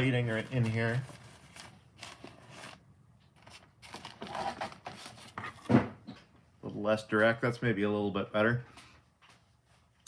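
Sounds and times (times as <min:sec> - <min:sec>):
clothing rustling near microphone: 0:00.0 - 0:02.8
soft handling noises: 0:00.0 - 0:07.5, 0:08.6 - 0:10.0.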